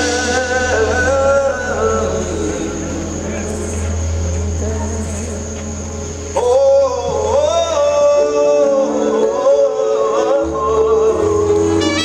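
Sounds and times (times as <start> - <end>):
live band music: 0.0 - 12.0
low bass drone: 0.0 - 12.0
man singing: 0.0 - 12.0.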